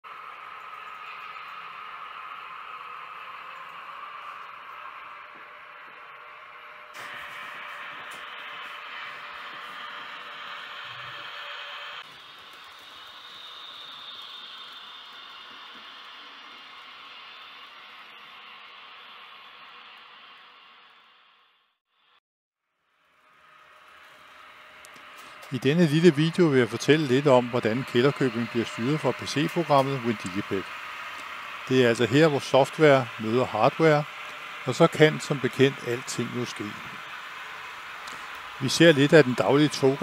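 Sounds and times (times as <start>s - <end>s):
wheels rolling on track: 0.1s - 21.0s, 23.0s - 40.0s
model train motors whirring: 0.1s - 22.2s, 22.8s - 40.0s.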